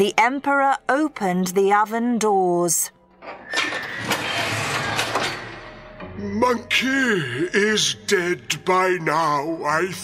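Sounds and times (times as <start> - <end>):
heavy oven doors opening: 3.2 - 5.7.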